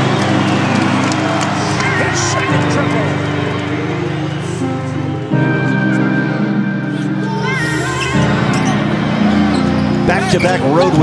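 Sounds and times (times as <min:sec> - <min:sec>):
steady music: 0:00.0 - 0:11.0.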